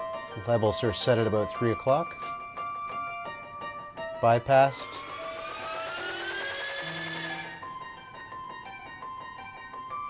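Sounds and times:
keyboard playing gliding tones: 0:00.0 - 0:10.0.

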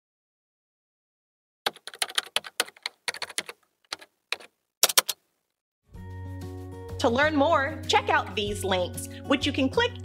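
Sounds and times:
keyboard key clicks: 0:01.7 - 0:05.2.

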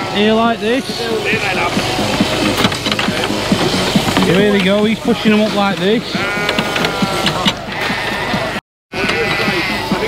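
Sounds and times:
sheep bleating: 0:06.0 - 0:10.0.

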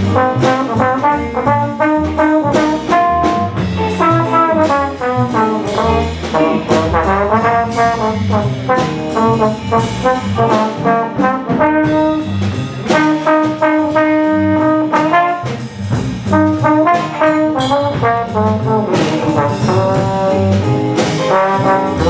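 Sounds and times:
bass line: 0:00.0 - 0:22.0
drums with cymbals: 0:00.0 - 0:22.0
trombone lead line: 0:00.0 - 0:22.0.

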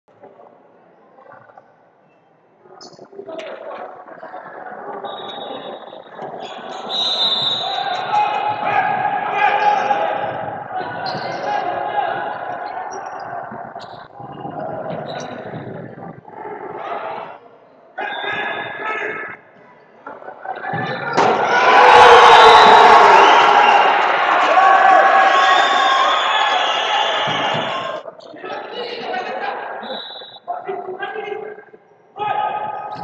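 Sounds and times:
players shouting in echoing hall: 0:06.4 - 0:13.6, 0:20.6 - 0:28.1, 0:32.2 - 0:33.0.

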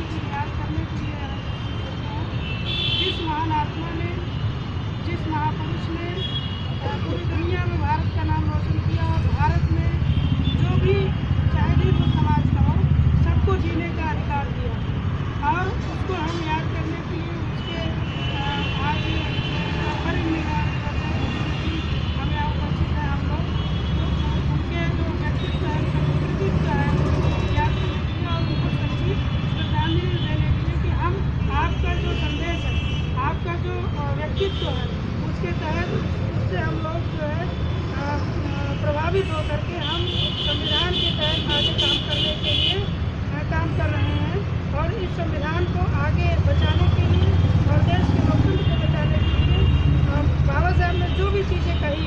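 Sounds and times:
road traffic rumble: 0:00.0 - 0:52.0.

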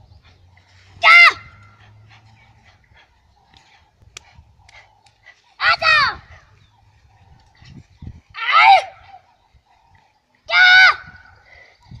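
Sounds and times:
child shouting: 0:01.0 - 0:01.6, 0:05.6 - 0:06.3, 0:08.4 - 0:09.2, 0:10.5 - 0:11.3.

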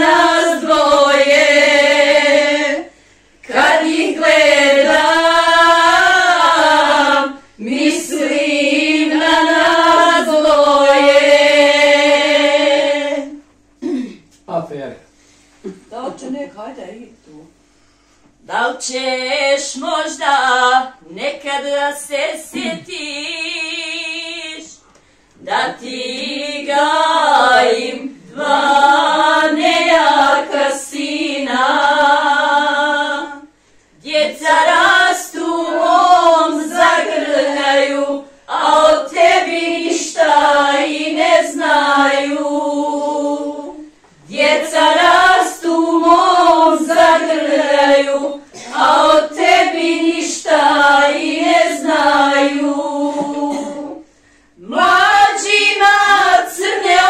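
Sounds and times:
women singing unaccompanied: 0:00.0 - 0:13.6, 0:18.4 - 0:24.8, 0:25.4 - 0:57.0.

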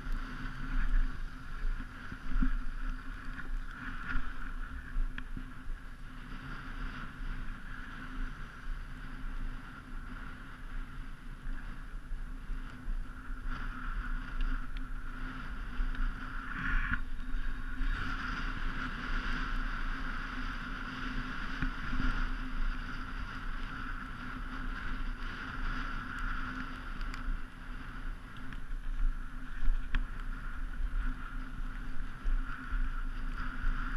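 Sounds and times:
skis scraping over snow: 0:00.0 - 0:33.9
wind noise on microphone: 0:00.0 - 0:33.9.

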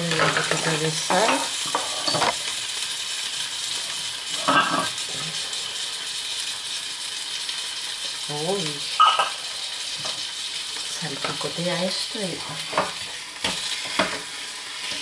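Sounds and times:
meat sizzling in a pan: 0:00.0 - 0:15.0.

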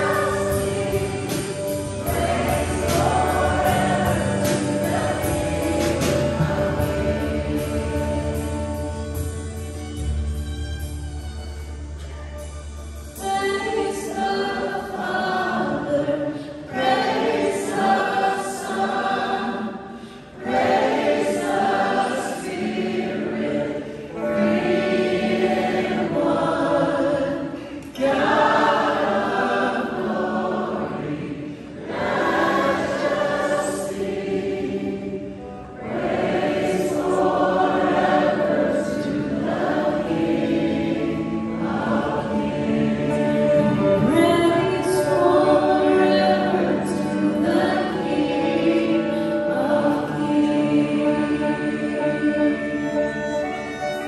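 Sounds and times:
worship band playing: 0:00.0 - 0:54.0
woman singing: 0:13.2 - 0:16.4, 0:43.8 - 0:53.4.

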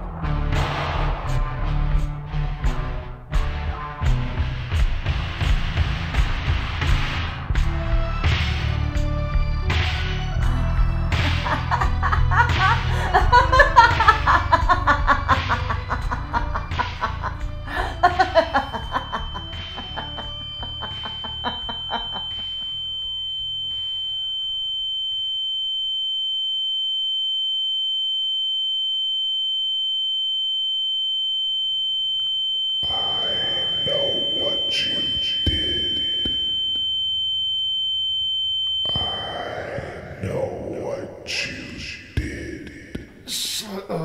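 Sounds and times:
music: 0:00.0 - 0:23.7
high-pitched electronic sine tone: 0:00.0 - 0:40.2.

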